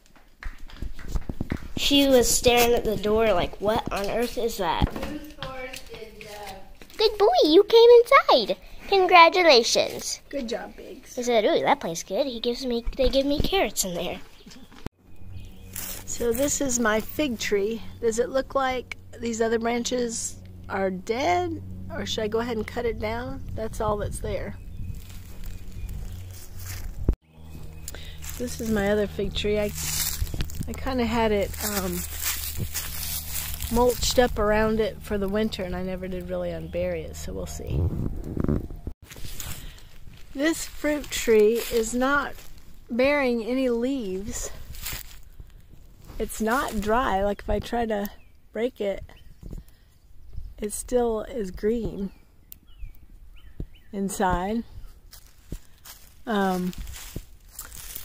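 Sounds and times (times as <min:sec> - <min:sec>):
steady low rumble: 0:01.2 - 0:06.2, 0:15.0 - 0:58.0
footsteps on straw and leaves: 0:15.3 - 0:17.9, 0:23.6 - 0:37.2, 0:39.0 - 0:42.9, 0:43.6 - 0:47.1, 0:54.8 - 0:58.0
twig clicks and knocks: 0:29.7 - 0:30.8, 0:56.7 - 0:58.0.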